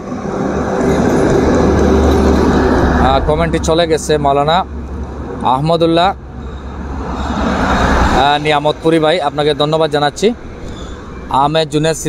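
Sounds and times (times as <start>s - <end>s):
vehicle engine and tyre noise: 0.0s - 12.0s.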